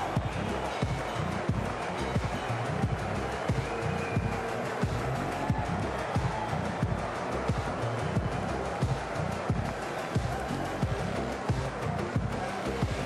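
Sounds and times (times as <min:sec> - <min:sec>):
heavy drum beat: 0:00.0 - 0:13.0
theme music: 0:00.0 - 0:13.0.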